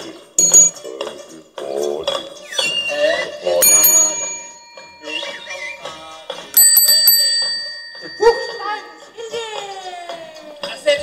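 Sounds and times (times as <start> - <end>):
bicycle bell ringing: 0.4 - 0.8, 3.6 - 9.6.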